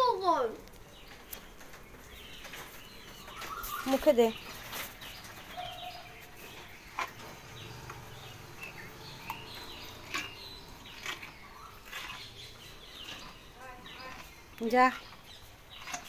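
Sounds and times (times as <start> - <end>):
small birds chirping: 0.0 - 16.0.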